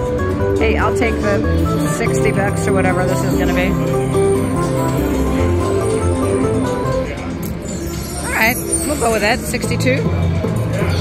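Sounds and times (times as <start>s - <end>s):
slot machine win music: 0.0s - 11.0s.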